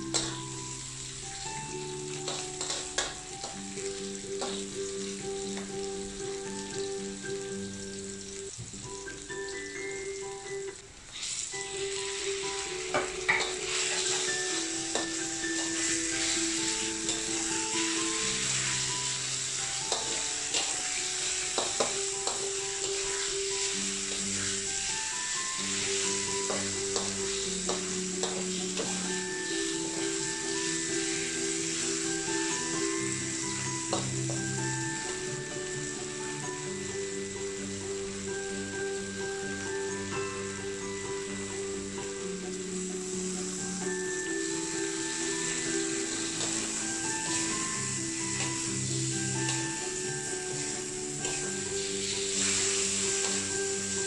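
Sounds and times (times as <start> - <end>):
background music: 0.0 - 54.0
oil sizzling in a wok: 0.0 - 54.0
metal spatula scraping pan: 13.3 - 18.9.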